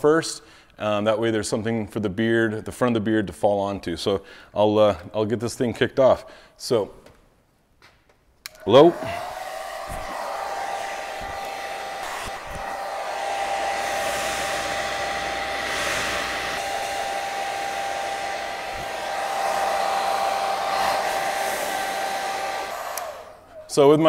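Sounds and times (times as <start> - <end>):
hair dryer whining: 8.5 - 24.0.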